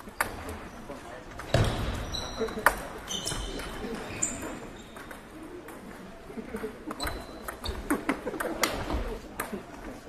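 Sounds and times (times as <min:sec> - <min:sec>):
background chatter: 0:00.0 - 0:10.0.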